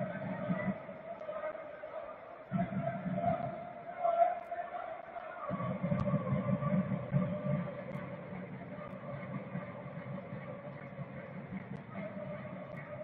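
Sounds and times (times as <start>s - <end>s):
crowd noise rumble: 0.0s - 13.0s.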